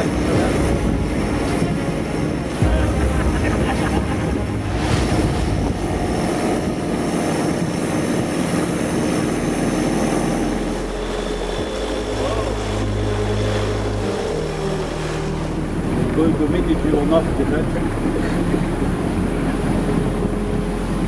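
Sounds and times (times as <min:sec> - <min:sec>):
boat engine running: 0:00.0 - 0:21.0.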